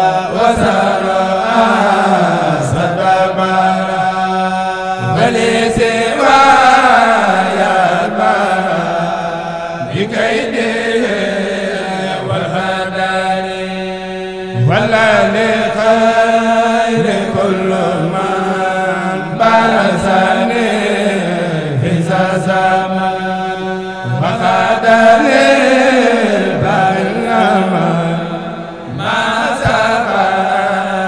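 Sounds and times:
men chanting: 0.0 - 31.0.

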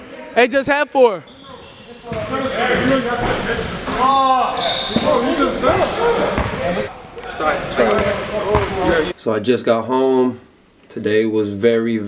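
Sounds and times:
players talking and calling out: 0.0 - 10.4.

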